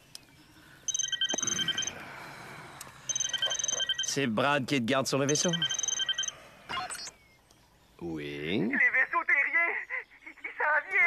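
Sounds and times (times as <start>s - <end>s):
electronic pulsing ring tone: 0.9s - 2.0s, 3.1s - 4.2s, 5.2s - 6.4s.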